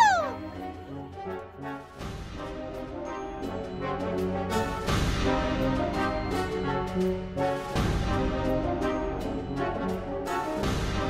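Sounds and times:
high-pitched witch's shriek: 0.0s - 0.4s
background music with low notes: 0.0s - 11.0s.

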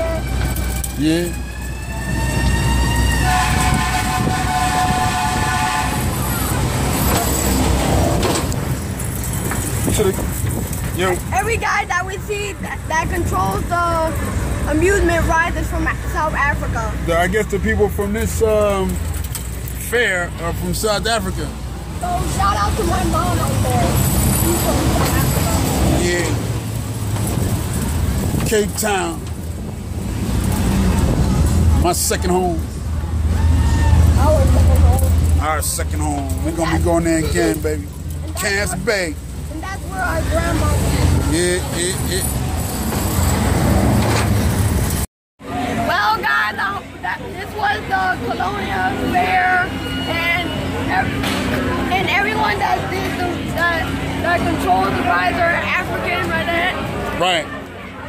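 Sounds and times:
loud fairground noise: 0.0s - 58.0s
wind buffeting a microphone: 1.9s - 6.9s, 7.6s - 13.8s.

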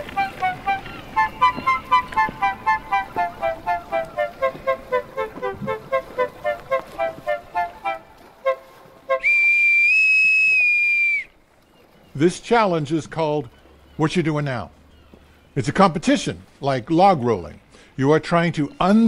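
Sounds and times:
short tune of evenly spaced notes: 0.0s - 9.2s
bosun's call whistle tone: 0.2s - 11.4s.

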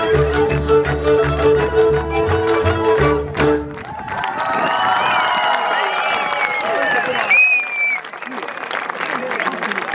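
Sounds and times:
audience applauding: 3.7s - 9.9s.

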